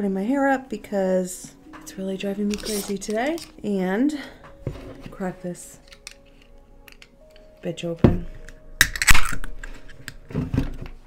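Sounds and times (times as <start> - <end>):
drink can opening: 2.5 - 3.6, 5.8 - 7.2, 8.8 - 10.2.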